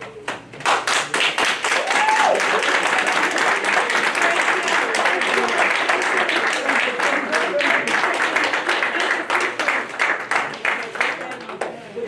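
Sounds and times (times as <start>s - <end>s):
people clapping: 0.0s - 12.0s.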